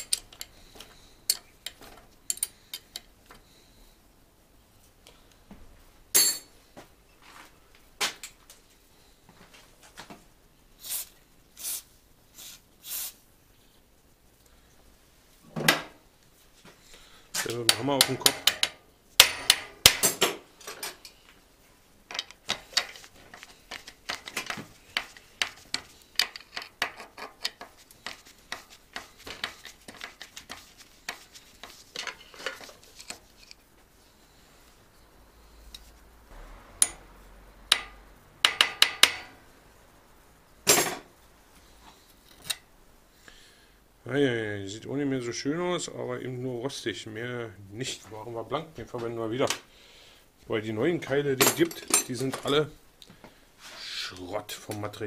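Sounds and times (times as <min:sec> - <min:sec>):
metal tools striking bicycle crank: 0:00.0 - 0:00.5.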